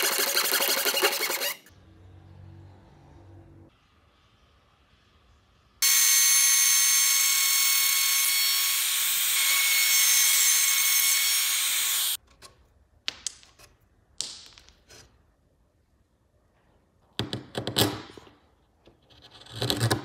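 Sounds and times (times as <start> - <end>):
router cutting wood: 5.8 - 12.2.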